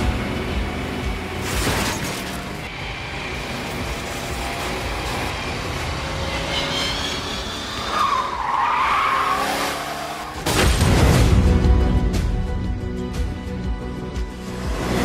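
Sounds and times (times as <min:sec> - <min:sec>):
tyres skidding and squealing: 0:00.0 - 0:10.7.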